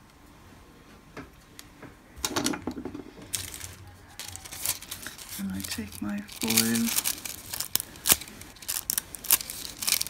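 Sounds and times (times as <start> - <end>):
rustling: 3.0 - 10.0.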